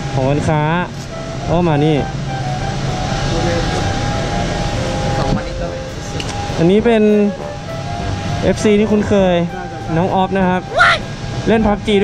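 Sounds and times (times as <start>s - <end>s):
man speaking: 3.2s - 4.0s.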